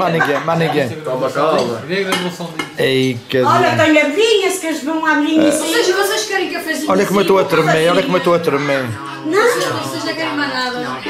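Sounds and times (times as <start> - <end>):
dishes and cutlery clinking: 1.6 - 2.8
voices talking: 5.4 - 6.1.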